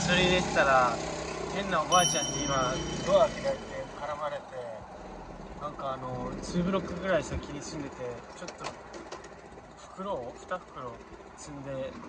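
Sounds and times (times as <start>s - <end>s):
short high chime: 1.9s - 4.3s.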